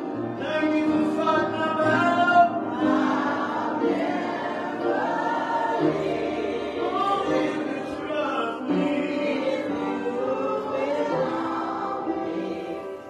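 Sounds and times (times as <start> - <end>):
choir singing gospel: 0.0 - 13.0
man singing into a microphone: 0.4 - 2.6.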